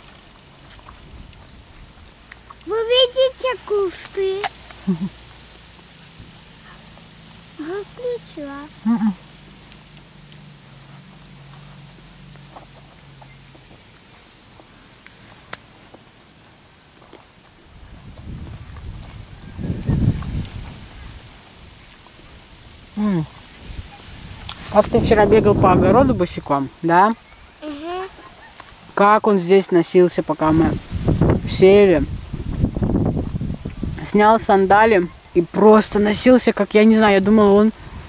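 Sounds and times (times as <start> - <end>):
grasshoppers chirring: 0.0 - 16.5, 17.3 - 38.0
murmured voices: 27.6 - 28.5.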